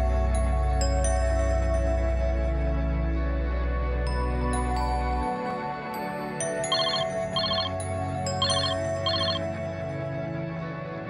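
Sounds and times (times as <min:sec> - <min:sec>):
soft ambient music: 0:00.0 - 0:11.0
telephone ringing: 0:06.7 - 0:07.8, 0:08.4 - 0:09.4.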